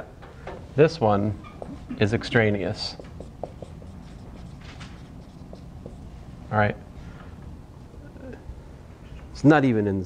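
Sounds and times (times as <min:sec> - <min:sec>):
marker squeaking on whiteboard: 0:01.2 - 0:06.2.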